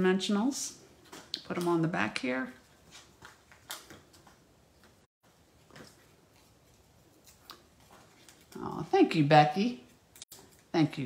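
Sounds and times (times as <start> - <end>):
faint paper ticks and rustles: 2.9 - 8.7.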